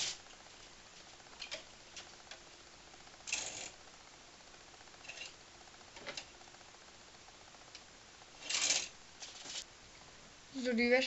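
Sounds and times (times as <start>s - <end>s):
clothes and hangers rustling clatter: 8.4s - 9.7s.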